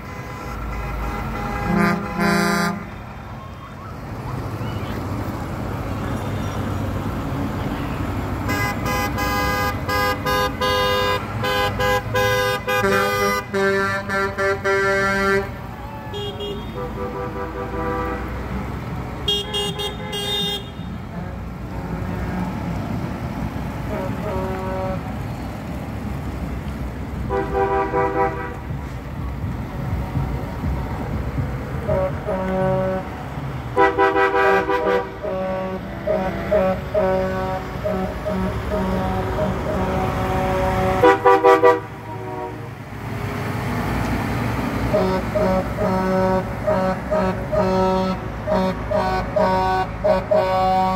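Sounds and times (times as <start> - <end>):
vehicle horns honking: 0.0 - 3.7, 8.4 - 18.6, 19.2 - 22.5, 23.8 - 25.2, 27.2 - 28.9, 31.8 - 42.8, 44.9 - 50.9
tractor engines running: 0.0 - 50.9.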